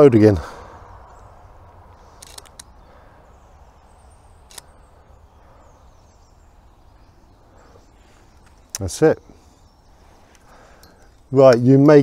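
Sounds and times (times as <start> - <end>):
traffic rumble: 0.0 - 12.0
camera shutter clicks: 2.1 - 2.7, 4.5 - 4.7.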